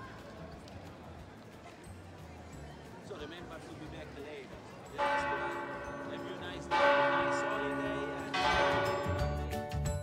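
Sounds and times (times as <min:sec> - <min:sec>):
church bell ringing: 0:05.0 - 0:09.3.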